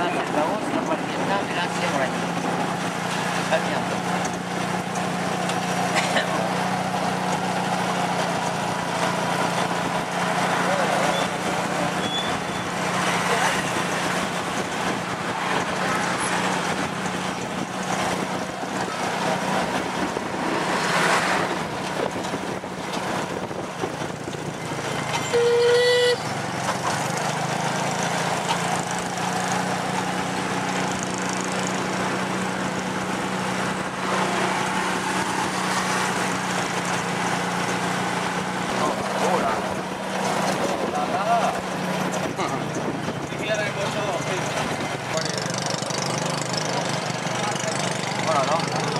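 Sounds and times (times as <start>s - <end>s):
street traffic: 0.0s - 48.9s
vehicle horn toot: 25.2s - 26.3s
motorbike engine running: 36.3s - 48.9s.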